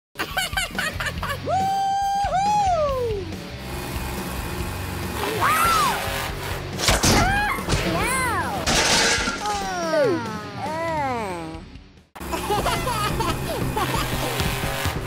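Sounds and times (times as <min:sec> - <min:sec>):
background music: 0:00.2 - 0:15.0
squealing cartoon voice effects: 0:05.3 - 0:06.0, 0:09.4 - 0:11.6
crash with shattering: 0:08.6 - 0:09.6.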